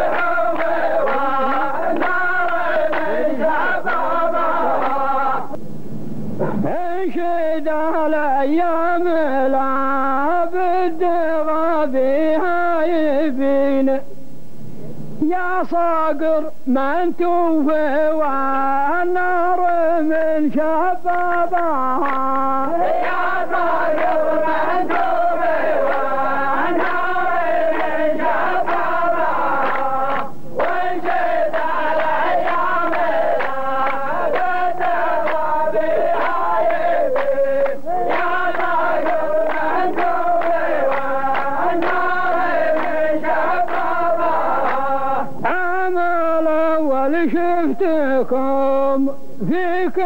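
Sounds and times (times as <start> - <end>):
men chanting in unison: 0.0 - 5.6, 18.0 - 49.1.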